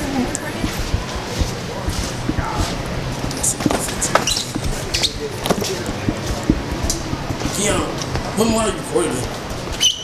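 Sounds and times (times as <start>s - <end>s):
footsteps: 0.0s - 9.8s
hubbub of indistinct voices: 0.0s - 9.9s
knocks and thumps: 0.5s - 8.4s.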